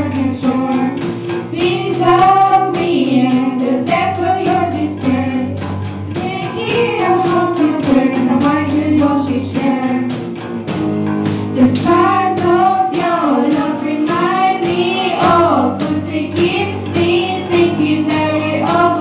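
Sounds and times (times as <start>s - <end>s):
girls singing together: 0.0s - 5.6s, 6.2s - 10.1s, 11.6s - 19.0s
electric guitar: 0.0s - 19.0s
keyboard: 0.0s - 19.0s
steady drum beat: 0.0s - 19.0s.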